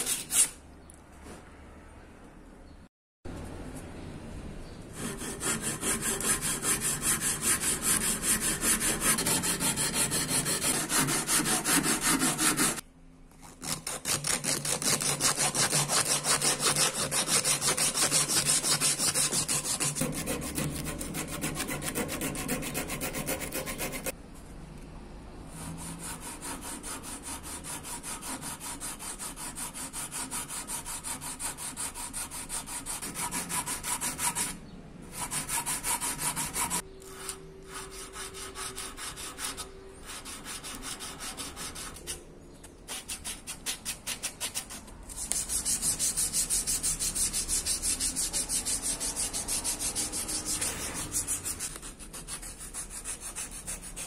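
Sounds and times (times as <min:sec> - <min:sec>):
hand file rasping on wood: 0:05.0 - 0:12.8, 0:13.6 - 0:24.1, 0:42.9 - 0:54.0.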